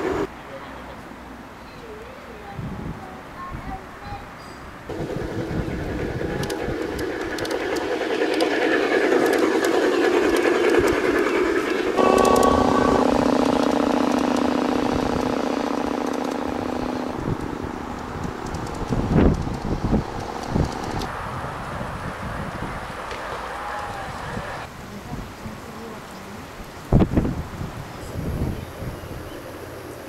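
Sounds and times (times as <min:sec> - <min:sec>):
wheels ticking: 0:04.9 - 0:21.1
model railcar motor humming whine: 0:04.9 - 0:21.4.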